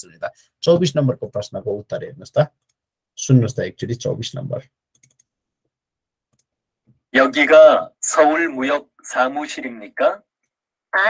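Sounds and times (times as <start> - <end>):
man speaking: 0.0 - 2.6, 3.2 - 4.7, 7.1 - 10.3.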